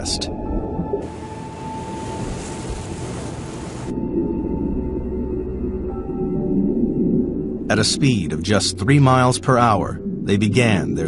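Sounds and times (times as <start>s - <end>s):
rushing water: 1.0s - 4.0s.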